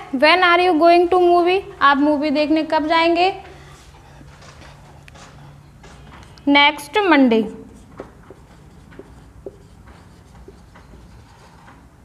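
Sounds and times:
marker scratching on whiteboard: 0:03.2 - 0:06.5, 0:07.6 - 0:12.0
marker tapping on whiteboard: 0:07.8 - 0:11.9.

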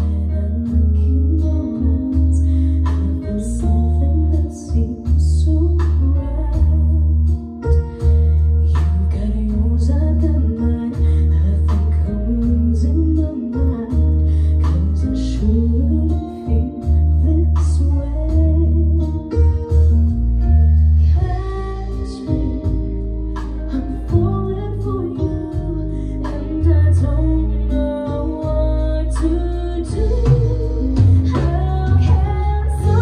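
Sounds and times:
woman singing: 0:00.0 - 0:19.7, 0:21.0 - 0:33.0
bass line: 0:00.0 - 0:33.0
drums: 0:00.0 - 0:33.0
guitar: 0:00.0 - 0:33.0
keyboard: 0:00.0 - 0:33.0.

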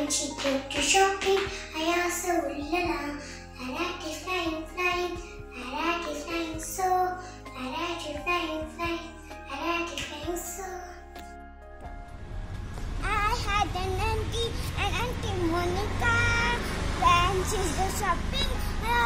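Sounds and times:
child singing: 0:00.0 - 0:11.0, 0:13.0 - 0:19.0
backing track low notes: 0:11.2 - 0:16.1.

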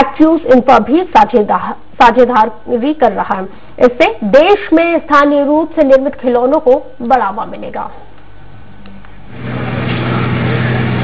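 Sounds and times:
motor running with low hum: 0:08.4 - 0:11.0
rushing noise: 0:09.3 - 0:11.0.

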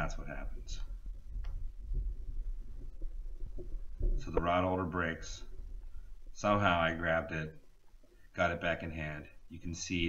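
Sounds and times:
low background rumble: 0:00.0 - 0:09.6.

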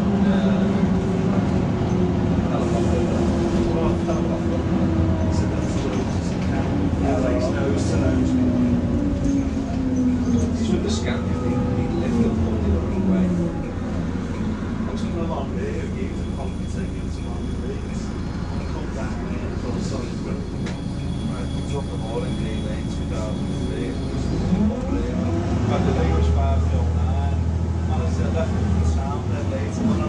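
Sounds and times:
bus diesel engine drone: 0:00.0 - 0:30.0
passengers talking quietly: 0:00.0 - 0:30.0
road noise: 0:00.0 - 0:30.0.

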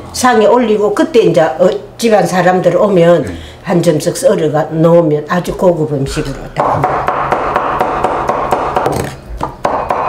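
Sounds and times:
knife chopping on wooden board: 0:06.6 - 0:10.0.

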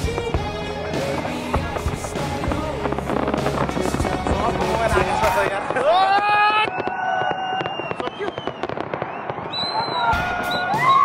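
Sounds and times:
fireworks crackling: 0:00.0 - 0:11.0.

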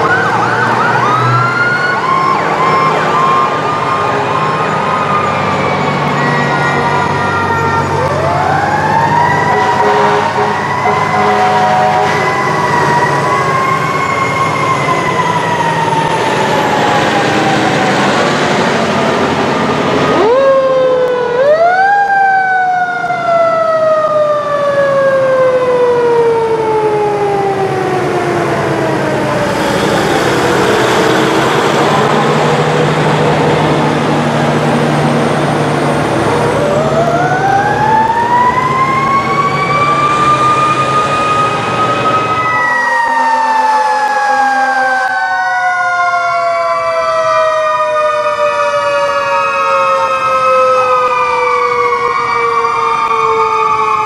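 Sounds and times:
fire engine passing: 0:00.0 - 0:54.0
mechanical sirens rising and falling: 0:00.0 - 0:54.0.

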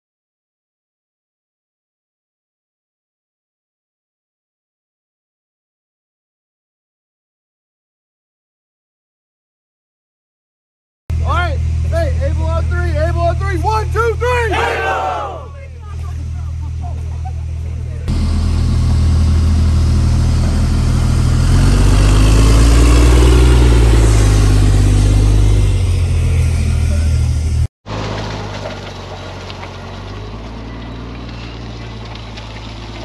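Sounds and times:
armored vehicle diesel engine: 0:11.1 - 0:33.0
tyres rolling: 0:27.9 - 0:33.0.

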